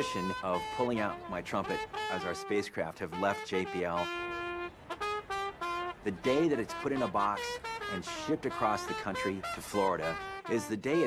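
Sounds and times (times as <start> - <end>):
trumpet playing notes: 0.0 - 11.0.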